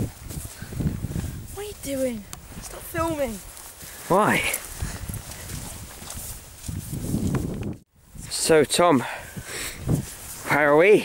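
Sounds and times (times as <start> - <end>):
wind on microphone: 0.0 - 10.5.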